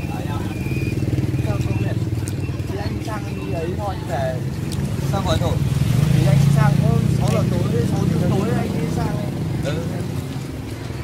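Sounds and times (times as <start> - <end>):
people talking: 0.0 - 10.2
vehicle engine humming: 0.0 - 11.0.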